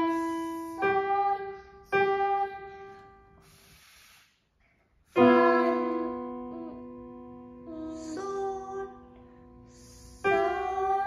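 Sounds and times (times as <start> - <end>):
short soft hiss: 3.4 - 5.8
electronic keyboard piano notes: 5.2 - 11.0.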